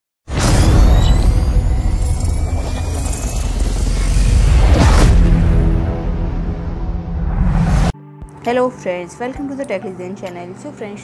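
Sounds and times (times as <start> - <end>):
deep rumble: 1.4 - 8.0
whooshes: 1.4 - 8.0.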